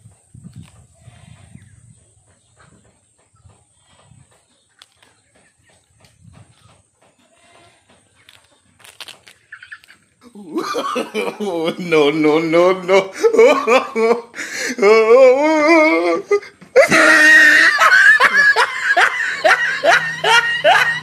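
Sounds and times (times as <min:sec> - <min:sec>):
leaves rustling and tearing: 0:08.3 - 0:10.0.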